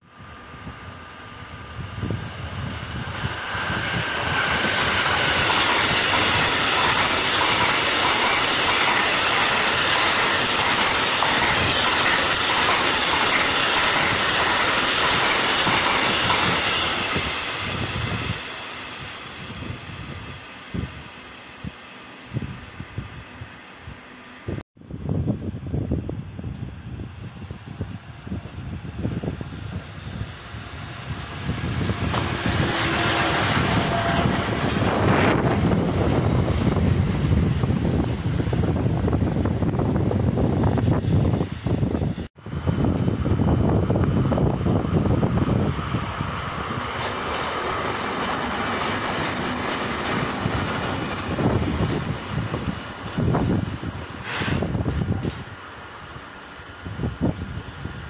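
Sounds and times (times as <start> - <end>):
rail vehicle rumble with knocks: 1.4 - 21.0, 25.1 - 58.0
train wheels clickety-clack on rails: 2.2 - 19.9, 28.2 - 55.5.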